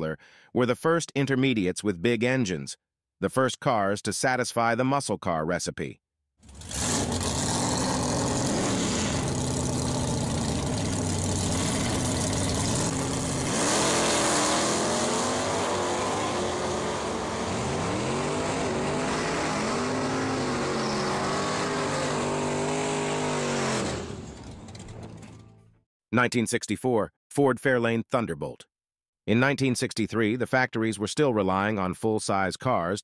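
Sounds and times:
drag car engines revving: 0:06.5 - 0:25.4.

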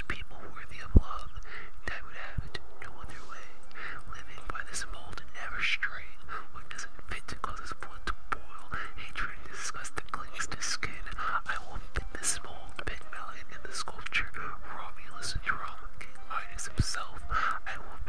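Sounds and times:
person whispering: 0:00.0 - 0:18.0.

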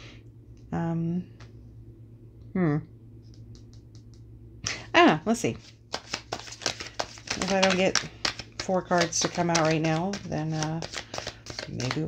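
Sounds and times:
steady low hum: 0:00.0 - 0:12.0
cards being shuffled: 0:05.6 - 0:12.0
person speaking: 0:07.0 - 0:12.0.

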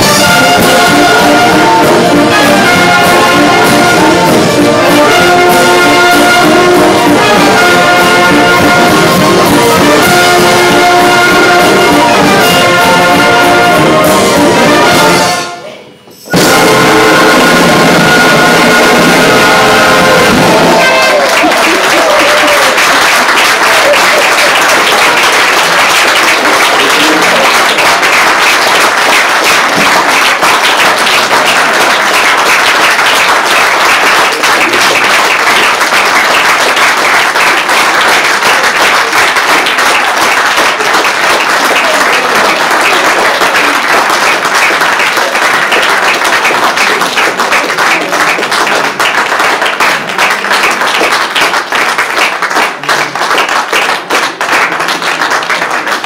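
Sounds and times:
audience applause: 0:00.0 - 0:15.4, 0:16.4 - 0:56.0.

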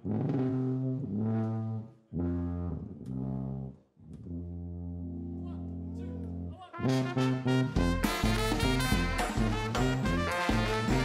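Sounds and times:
brass band playing: 0:00.0 - 0:03.7, 0:04.3 - 0:11.0.

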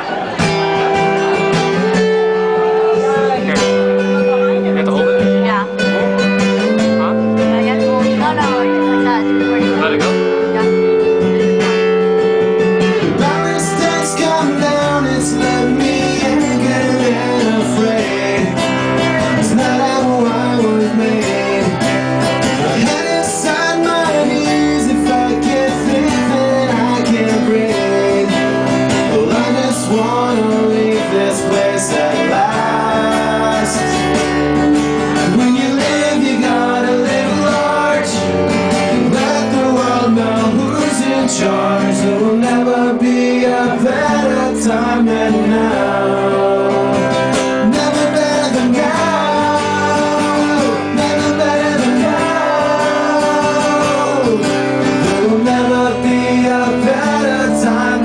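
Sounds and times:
strummed acoustic guitar: 0:00.0 - 0:58.0
deep bass line: 0:00.2 - 0:58.0.

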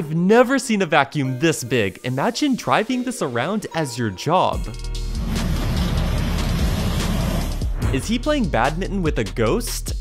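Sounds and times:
low engine hum: 0:05.1 - 0:07.7
leaf vacuum rushing air: 0:05.1 - 0:07.8.

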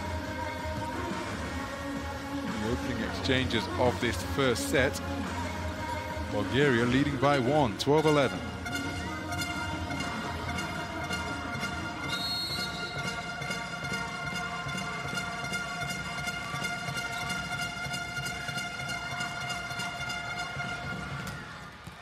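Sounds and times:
crowd noise: 0:00.0 - 0:22.0
plastic trumpets blowing: 0:08.0 - 0:21.4
short high whistle: 0:12.0 - 0:13.2.

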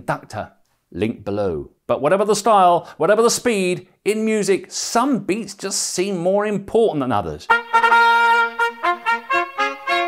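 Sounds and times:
brass fanfare: 0:07.5 - 0:10.0.

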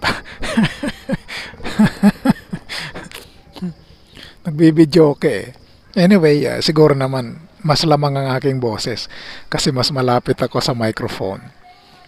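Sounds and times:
person speaking broken syllables: 0:02.8 - 0:03.8.

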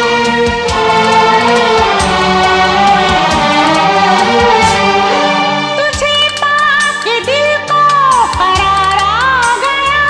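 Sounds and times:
orchestral film music with chorus: 0:00.0 - 0:06.0
percussion strikes: 0:00.0 - 0:10.0.

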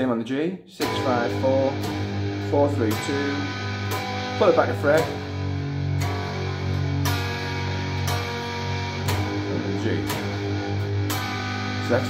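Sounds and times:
distorted electric guitar chords: 0:00.8 - 0:12.0.

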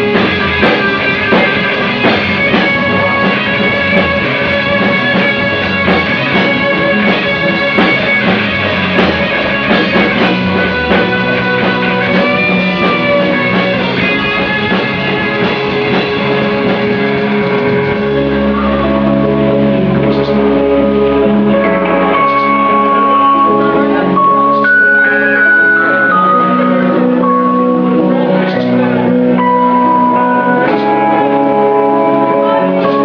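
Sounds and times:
bass guitar: 0:00.0 - 0:33.0
drums: 0:00.0 - 0:33.0
electric guitar: 0:00.0 - 0:33.0.

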